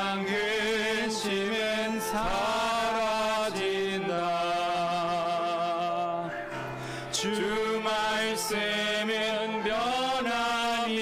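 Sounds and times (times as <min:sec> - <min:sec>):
men singing a hymn: 0:00.0 - 0:11.0.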